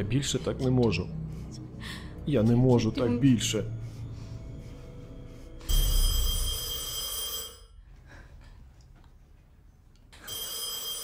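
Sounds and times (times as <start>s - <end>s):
telephone ringing: 5.7s - 7.8s, 10.2s - 11.0s.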